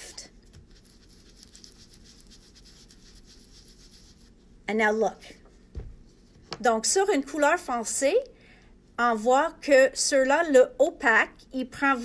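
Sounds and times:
foam tool rubbing on cardstock: 0.5 - 4.5.

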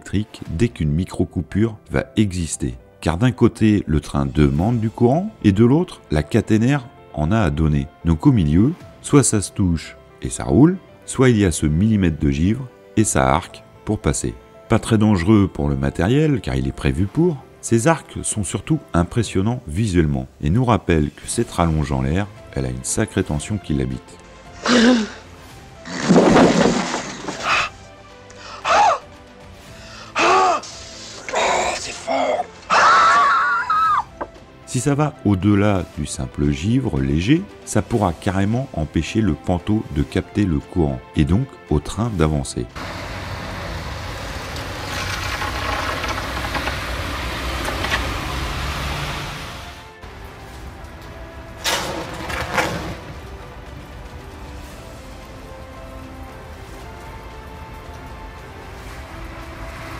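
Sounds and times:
rasping gasp: 24.6 - 25.3, 27.4 - 29.0.

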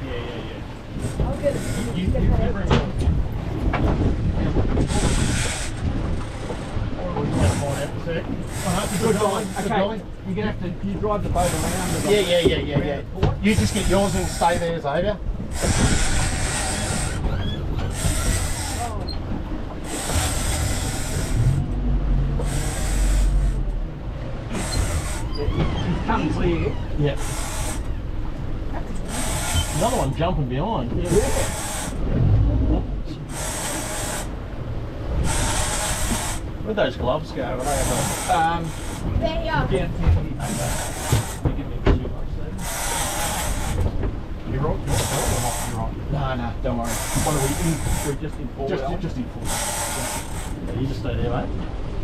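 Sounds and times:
low rumble: 0.0 - 8.6, 15.1 - 42.6
fishing reel buzzing: 15.5 - 17.2, 17.9 - 19.0, 19.8 - 21.6, 22.4 - 23.6, 24.5 - 25.3, 27.2 - 27.9, 29.0 - 30.0, 31.2 - 32.0, 33.3 - 34.3, 35.2 - 36.5, 37.6 - 39.0, 40.5 - 41.4, 42.6 - 43.8, 46.9 - 48.2, 49.4 - 50.6.

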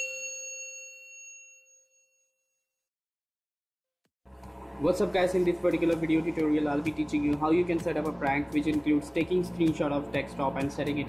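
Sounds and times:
bell ding: 0.0 - 2.5.

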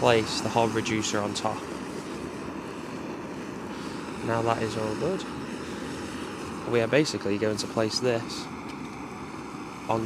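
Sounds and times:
gas burner hissing: 0.0 - 10.0.

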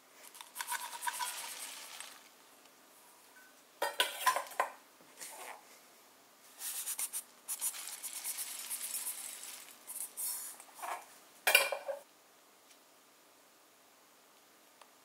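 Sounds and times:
chopped nuts pouring into bowl: 0.4 - 2.3, 7.6 - 10.0
dishware clinking: 11.5 - 12.0.

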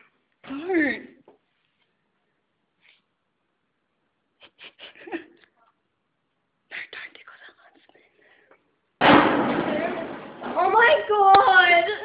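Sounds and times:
girl whispering: 6.7 - 8.2.

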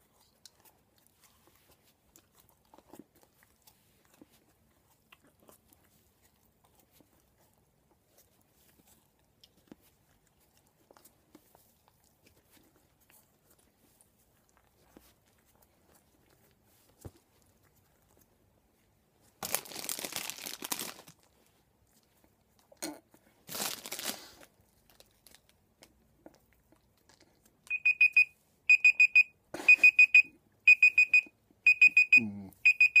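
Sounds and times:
timer alarm beeping: 27.7 - 33.0.

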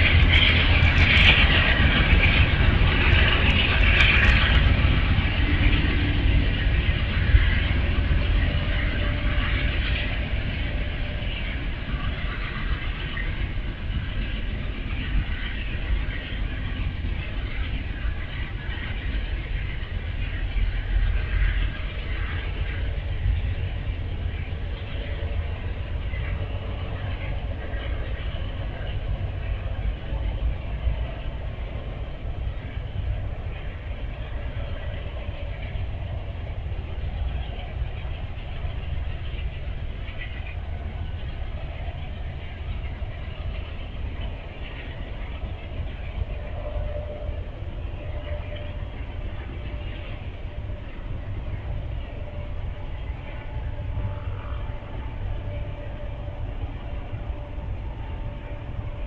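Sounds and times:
diesel trains rumbling: 0.0 - 59.0
passenger train pulling away: 0.0 - 59.0.

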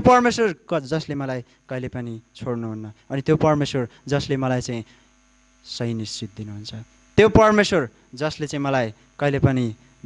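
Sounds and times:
man speaking through microphone: 0.0 - 4.9, 5.6 - 9.8
electrical mains hum: 0.0 - 10.0.

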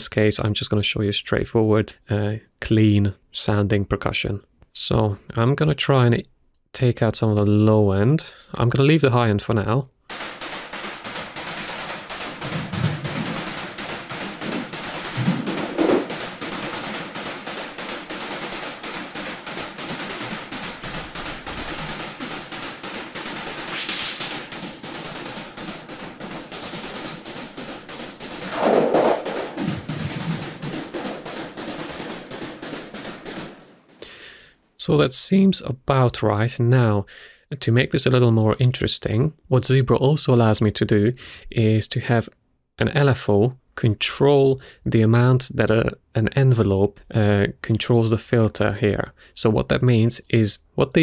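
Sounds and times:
synthesized noise percussion: 10.1 - 34.1.

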